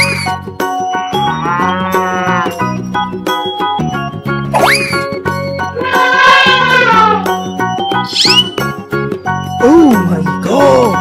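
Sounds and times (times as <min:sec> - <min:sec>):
cheerful background music: 0:00.0 - 0:11.0
cow mooing: 0:01.4 - 0:02.6.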